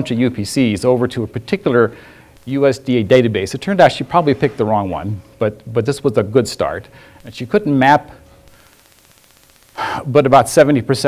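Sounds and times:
man speaking: 0.0s - 8.2s, 9.8s - 11.0s
quick in-breath: 1.9s - 2.4s, 6.9s - 7.3s, 9.8s - 10.1s.

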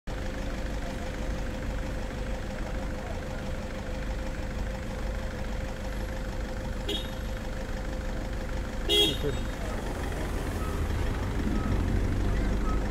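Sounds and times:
vehicle engine idling: 0.1s - 12.9s.

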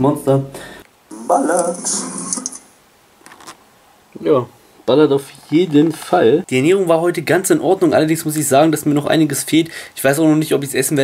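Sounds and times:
man speaking: 1.1s - 2.3s, 4.2s - 11.0s.

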